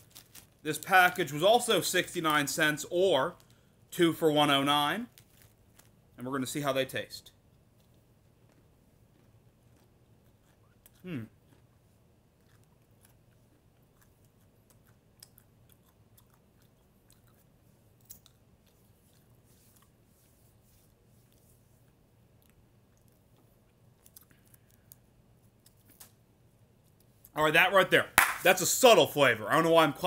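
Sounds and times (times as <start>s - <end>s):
faint chewing of peanuts: 5.1s - 6.6s, 7.3s - 27.4s.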